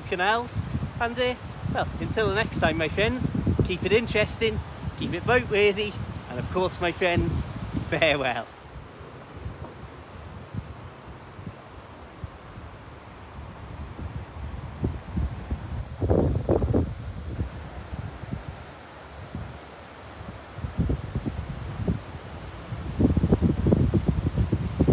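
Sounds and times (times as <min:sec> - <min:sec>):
faint steady rush: 0:00.0 - 0:24.9
wind buffeting microphone: 0:00.0 - 0:24.9.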